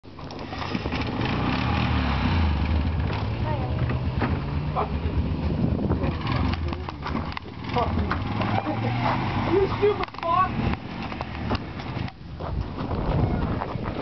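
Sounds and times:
car engine running: 0.3 - 12.4.

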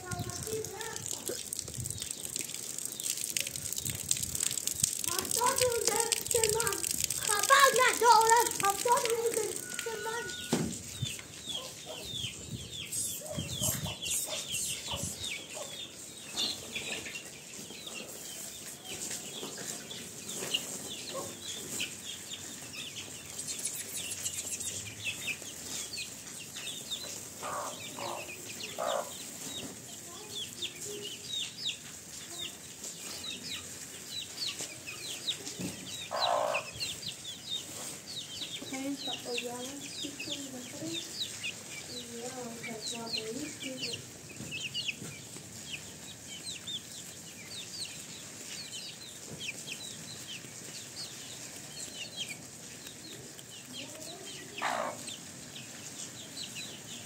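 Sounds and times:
chicks peeping: 0.0 - 57.0
lower louder chick calls: 9.6 - 15.8.

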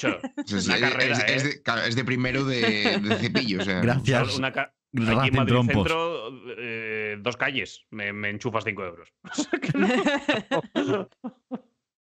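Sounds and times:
human laughter: 2.6 - 3.9, 9.3 - 11.6.

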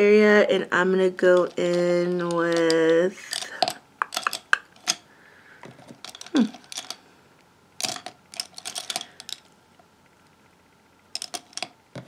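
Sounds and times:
makeup brushes clicking and tapping: 1.2 - 5.0, 5.9 - 7.0, 7.8 - 9.5, 11.2 - 12.0
person murmuring hmm: 6.3 - 6.6.

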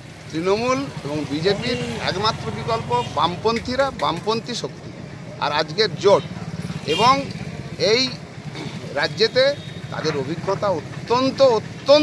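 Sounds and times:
man speaking: 0.3 - 4.8, 5.4 - 12.0.

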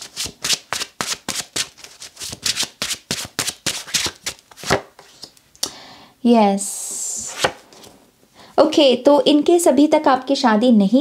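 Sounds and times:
cards being shuffled: 0.0 - 5.4, 7.2 - 8.0.

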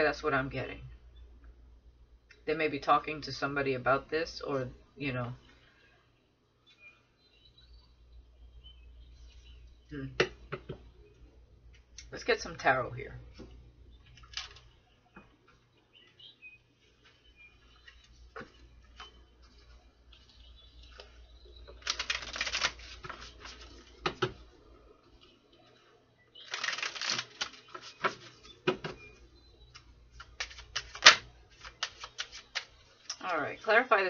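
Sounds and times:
cards shuffling: 14.2 - 14.7, 21.7 - 24.4, 26.4 - 29.0, 29.7 - 33.2.

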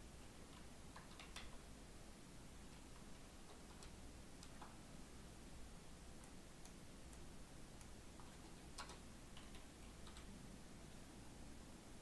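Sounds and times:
faint clicks: 6.2 - 10.3.

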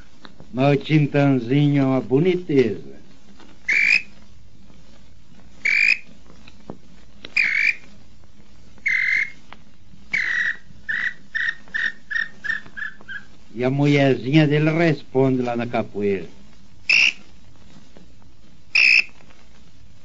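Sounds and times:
bird whistled calls: 3.7 - 4.1, 5.6 - 6.1, 7.4 - 7.8, 8.8 - 9.4, 10.1 - 13.3, 16.9 - 17.2, 18.7 - 19.1.

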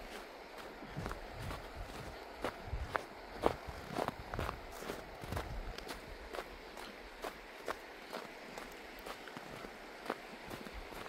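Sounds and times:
faint steady hiss: 0.0 - 11.0
footsteps crunching on snow: 0.0 - 11.0.

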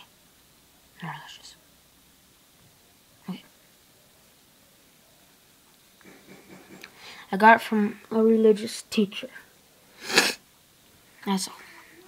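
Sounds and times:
child speaking: 7.3 - 9.4, 11.2 - 12.0.

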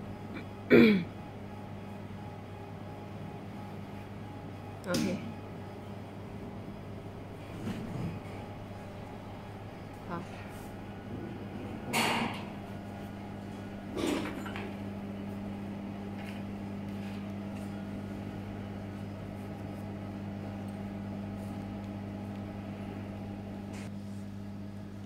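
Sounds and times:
low electrical machine hum: 0.0 - 25.0.

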